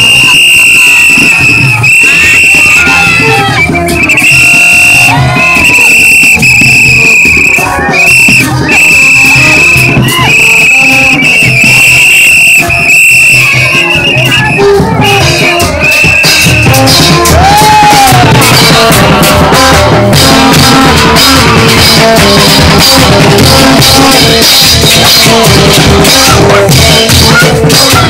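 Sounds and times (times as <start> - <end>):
crowd voices: 0.0 - 28.0
shrill horn blasts: 0.0 - 28.0
street band percussion: 0.0 - 28.0.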